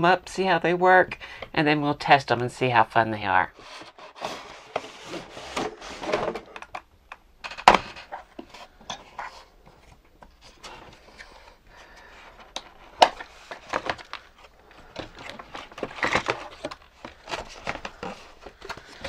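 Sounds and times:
cardboard and plastic rustling: 0:03.5 - 0:06.8, 0:07.4 - 0:19.0.

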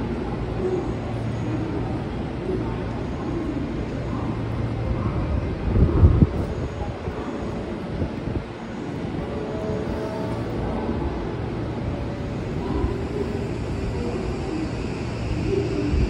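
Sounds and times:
idle electric train hum: 0:00.0 - 0:16.0.

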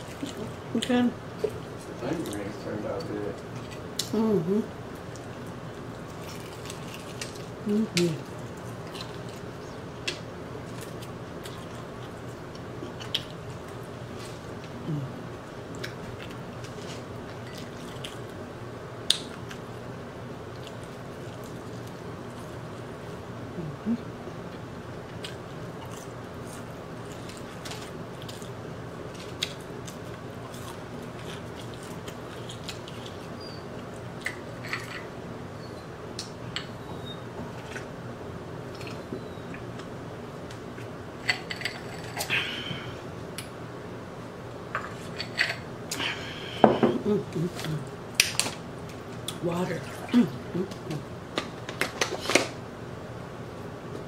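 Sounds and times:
steady low hum: 0:00.0 - 0:54.0
person chewing crispy chicken: 0:05.0 - 0:07.6, 0:08.3 - 0:14.8, 0:24.5 - 0:34.2.

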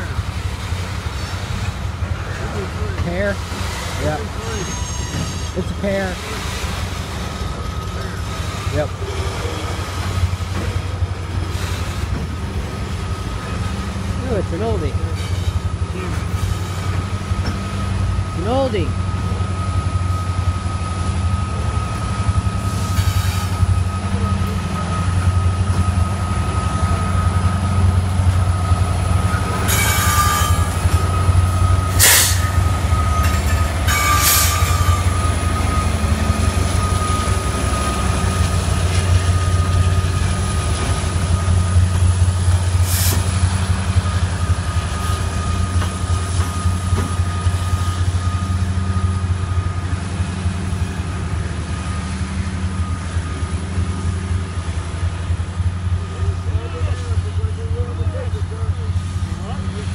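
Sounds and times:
freight train rumbling past: 0:00.0 - 0:59.9
wheel squeal: 0:03.7 - 0:05.6, 0:29.4 - 0:40.0.

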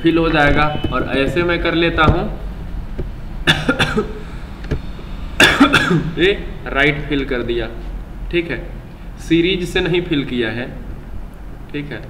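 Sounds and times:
low steady hum: 0:00.0 - 0:12.0
man coughing: 0:03.5 - 0:04.4, 0:05.4 - 0:06.2.

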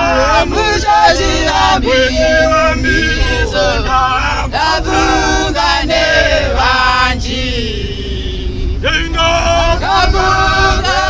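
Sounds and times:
group singing a church hymn: 0:00.0 - 0:11.0.

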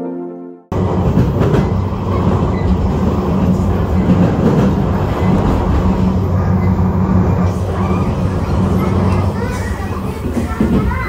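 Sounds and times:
train rail noise: 0:00.7 - 0:11.0.

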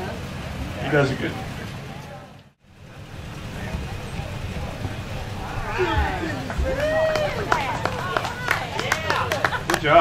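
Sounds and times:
faint voices: 0:00.0 - 0:10.0
wind noise on microphone: 0:02.7 - 0:08.6.

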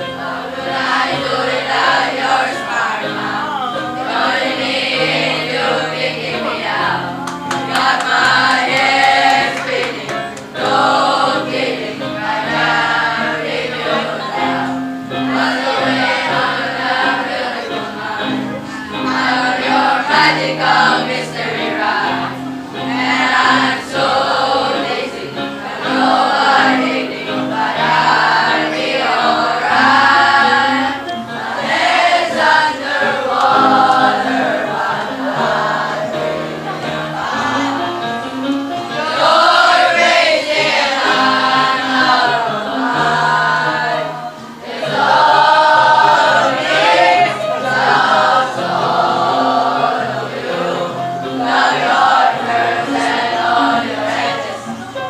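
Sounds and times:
children's choir singing: 0:00.0 - 0:55.0.

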